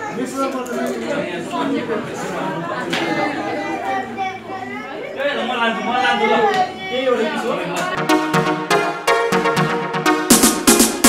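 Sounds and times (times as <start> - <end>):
people talking at once: 0.0 - 8.1.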